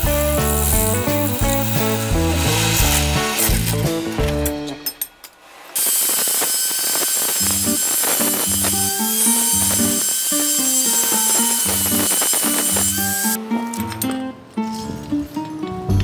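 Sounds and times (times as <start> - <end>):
background music with plucked bass: 0.0 - 4.8, 13.4 - 16.0
angle grinder on steel: 0.0 - 4.9, 5.6 - 13.4.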